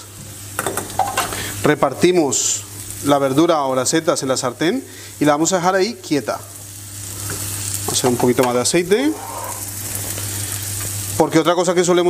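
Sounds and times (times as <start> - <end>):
mushrooms sizzling in oil: 0.0 - 12.0.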